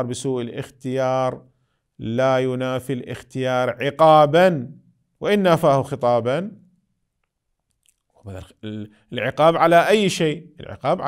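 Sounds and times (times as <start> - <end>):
man speaking: 2.0 - 6.6, 8.2 - 11.0
faint mouth clicks: 7.2 - 8.2.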